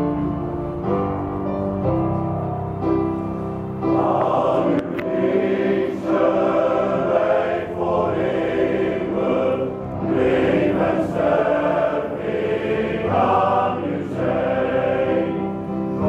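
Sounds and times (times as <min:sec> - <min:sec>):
men's choir singing: 0:03.8 - 0:16.0.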